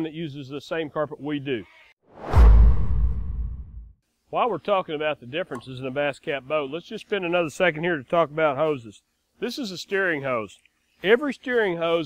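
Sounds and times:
whoosh transition: 2.1 - 3.9
deep low boom: 2.2 - 3.9.

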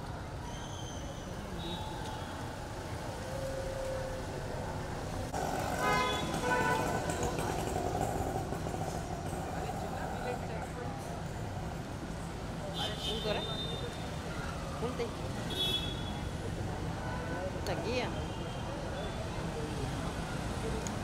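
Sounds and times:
traffic rumble: 0.0 - 21.0
murmur of voices: 1.1 - 21.0.

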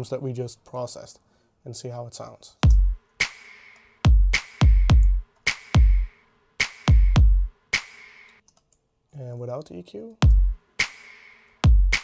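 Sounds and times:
hip hop drum loop: 2.6 - 8.4, 10.2 - 12.0.

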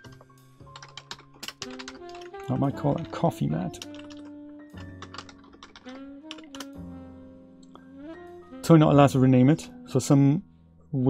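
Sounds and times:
soft background music: 0.0 - 11.0
keyboard key clicks: 3.8 - 6.8.

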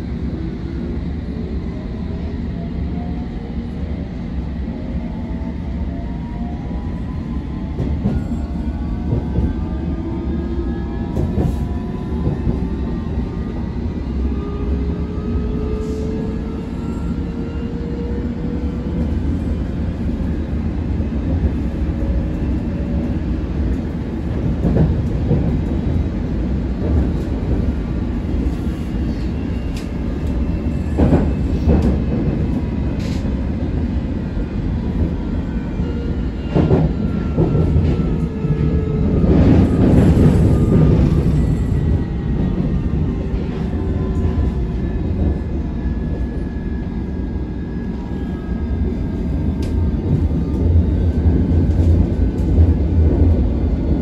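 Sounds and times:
train rumbling in tunnel: 0.0 - 54.0.

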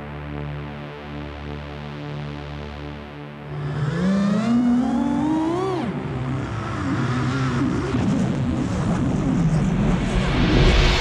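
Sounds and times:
revving motor whine: 3.4 - 9.3.

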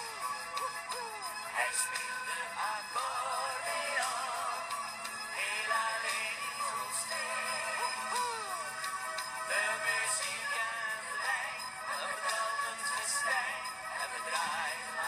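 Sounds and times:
pop song with band backing: 9.4 - 15.0.

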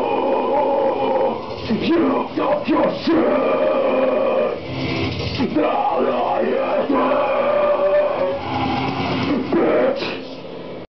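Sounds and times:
backing track music: 0.0 - 9.8.

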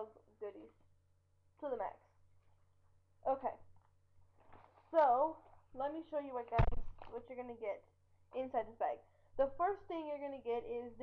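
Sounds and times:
woman speaking: 0.0 - 0.8, 1.6 - 2.1, 3.2 - 3.7, 4.9 - 11.0
low steady hum: 0.0 - 11.0.

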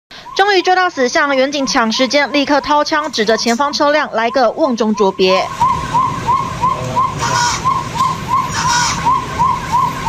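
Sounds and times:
police siren yelping: 0.1 - 10.0.

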